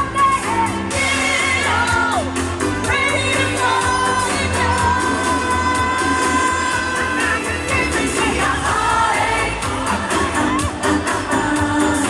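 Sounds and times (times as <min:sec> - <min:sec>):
band with steady bass: 0:00.0 - 0:12.0
women singing: 0:00.0 - 0:12.0.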